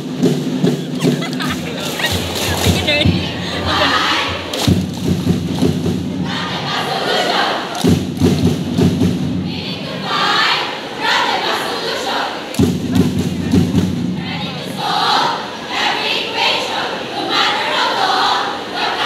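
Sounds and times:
women chanting in unison: 1.7 - 4.6, 6.2 - 7.8, 9.4 - 13.5, 14.2 - 19.0.

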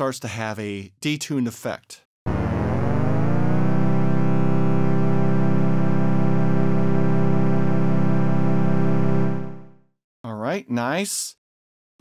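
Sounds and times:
sustained detuned synthesizer note: 2.3 - 9.8.

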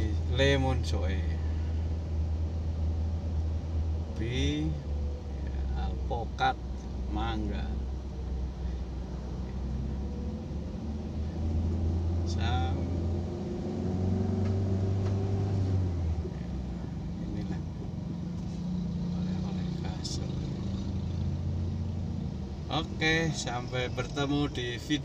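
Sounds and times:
car engine and road rumble: 0.0 - 25.0.

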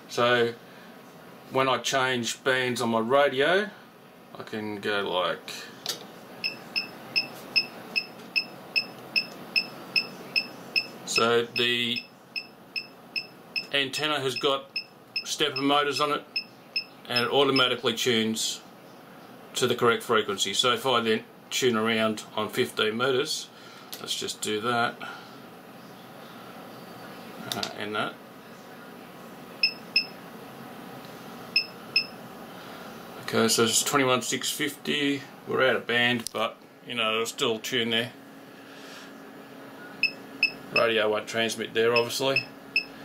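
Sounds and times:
short high-pitched beeps: 6.4 - 11.0, 29.6 - 30.1, 31.6 - 32.1, 40.0 - 40.9.

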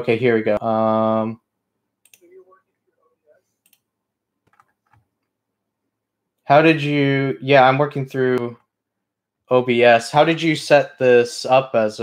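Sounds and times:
keyboard and mouse clicks: 2.0 - 2.3, 3.6 - 5.3.

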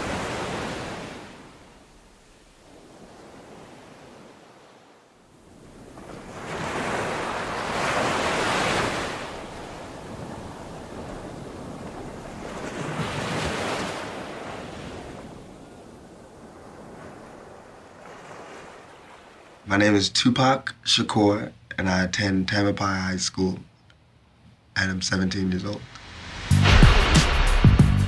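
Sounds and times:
surf-like rushing noise: 0.0 - 19.7.

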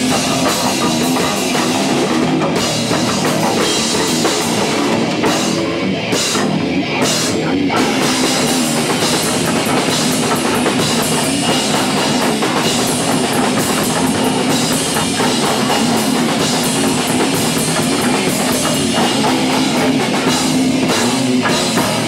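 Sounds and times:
drum kit with crashing cymbals: 0.0 - 22.0
electric guitar: 0.0 - 22.0
live rock band: 0.0 - 22.0.

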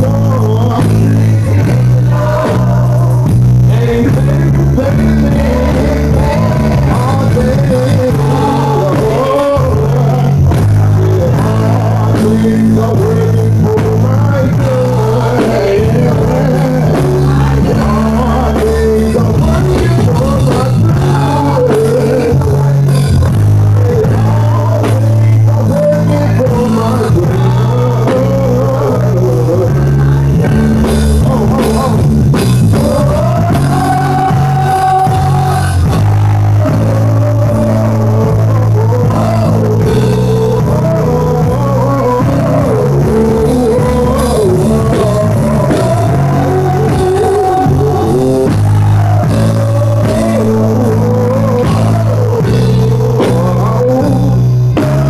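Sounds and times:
church band playing gospel music: 0.0 - 55.0
keyboard chords with bass: 0.0 - 55.0
man singing: 0.0 - 55.0.

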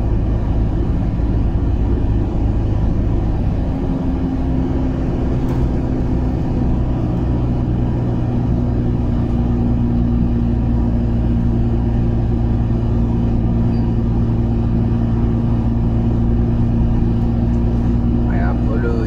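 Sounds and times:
truck diesel engine droning: 0.0 - 19.0
tyre and road noise: 0.0 - 19.0.

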